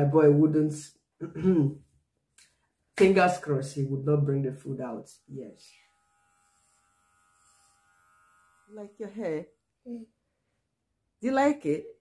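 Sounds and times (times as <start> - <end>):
electric hair clippers buzzing: 5.2 - 9.8.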